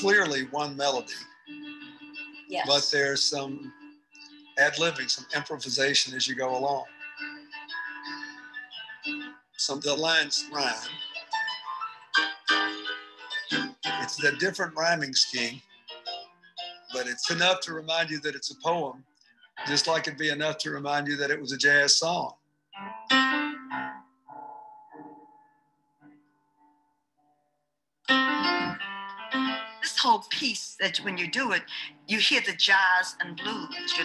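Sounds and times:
slow jazzy piano chords: 0:28.2 - 0:29.6.

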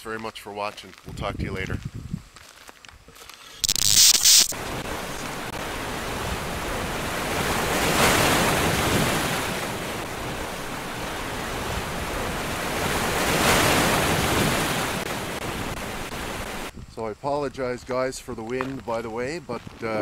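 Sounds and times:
ocean surf: 0:03.7 - 0:16.7.

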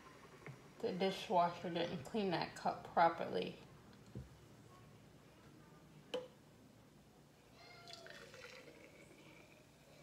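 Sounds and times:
juice pouring into glass jar: 0:07.8 - 0:10.0.

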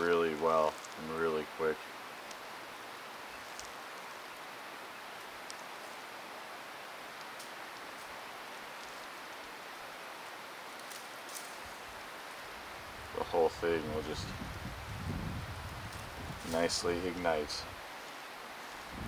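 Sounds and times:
dry stems rustling and snapping: 0:00.0 - 0:12.6, 0:15.7 - 0:19.0
outdoor hiss: 0:00.0 - 0:19.0.

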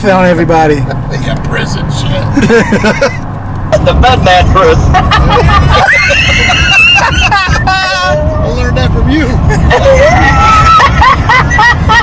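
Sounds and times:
car road noise rumble: 0:00.0 - 0:12.0
men laughing hard: 0:02.3 - 0:03.3, 0:04.8 - 0:08.2, 0:09.3 - 0:12.0
high-pitched squealing laugh: 0:04.9 - 0:08.3, 0:09.4 - 0:12.0.

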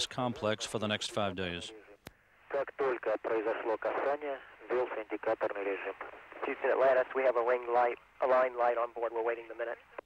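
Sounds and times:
voice over narrow-band radio: 0:00.0 - 0:10.0.

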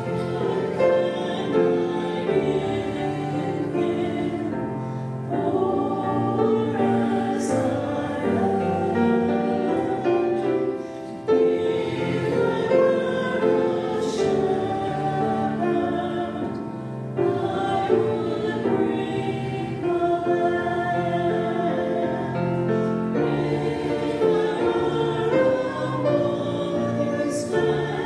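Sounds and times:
women singing into microphones: 0:00.0 - 0:10.8, 0:11.5 - 0:22.6, 0:23.3 - 0:28.0
grand piano: 0:00.0 - 0:28.0.

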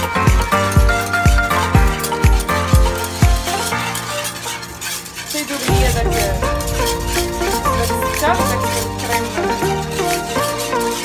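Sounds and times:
background music: 0:00.0 - 0:11.0
whisk scraping a pan: 0:00.0 - 0:11.0.

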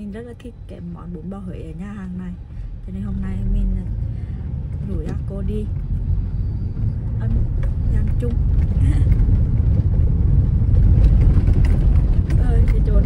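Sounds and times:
tyre and road rumble: 0:01.2 - 0:13.0.

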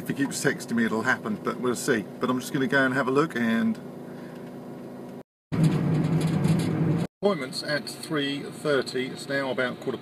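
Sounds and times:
car engine and road hum: 0:00.0 - 0:10.0.

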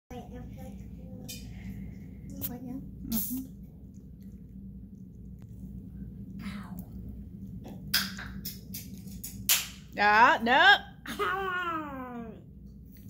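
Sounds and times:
low steady hum: 0:00.1 - 0:13.0.

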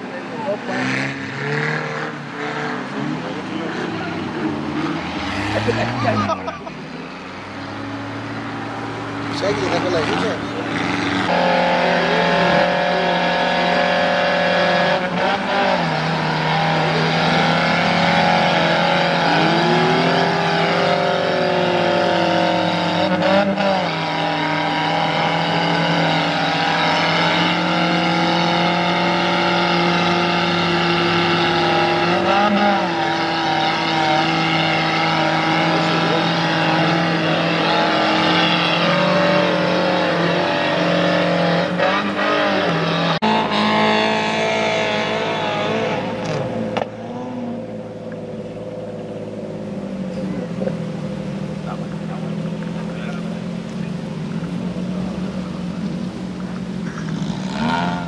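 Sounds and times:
off-road engine revving high: 0:00.0 - 0:58.0.

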